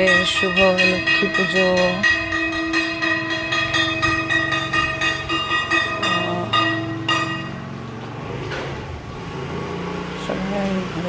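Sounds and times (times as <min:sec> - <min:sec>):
hand bell ringing: 0:00.0 - 0:07.6.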